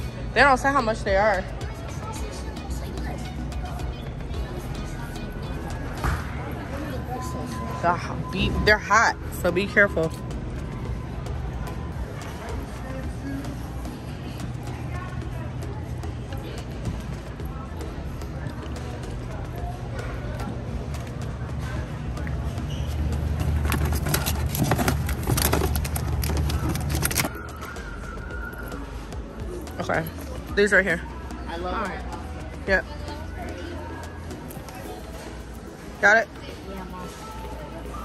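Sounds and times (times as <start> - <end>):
background music: 0.0 - 38.0.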